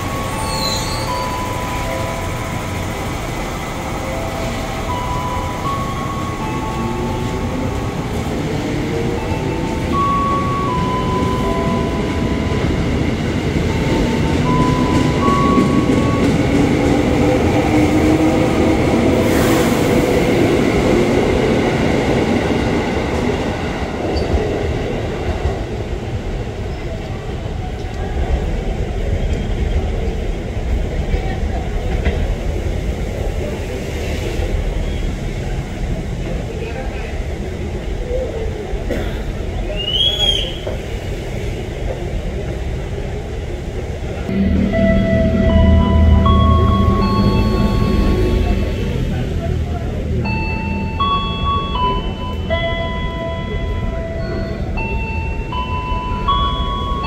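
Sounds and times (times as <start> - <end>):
electric train pulling away: 0.0 - 31.2, 43.3 - 57.0.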